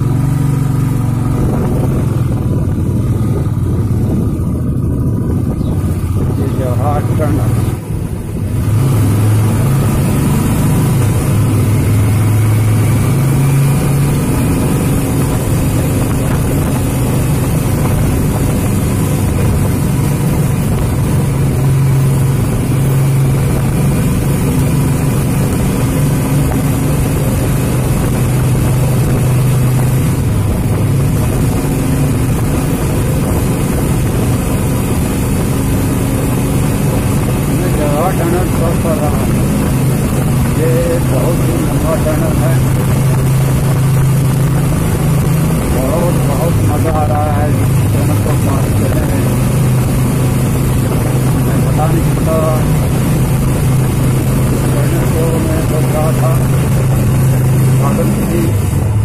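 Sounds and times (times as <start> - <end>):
low hum: 0.0 - 59.0
vehicle engine and road noise: 0.0 - 59.0.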